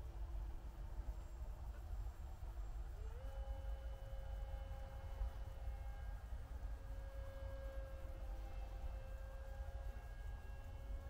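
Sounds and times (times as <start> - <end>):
motor and propeller drone: 0.0 - 11.0
wind rumble on microphone: 0.0 - 11.0.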